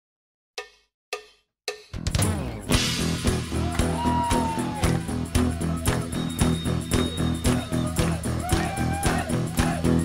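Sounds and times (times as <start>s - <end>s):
band playing: 2.1s - 10.0s.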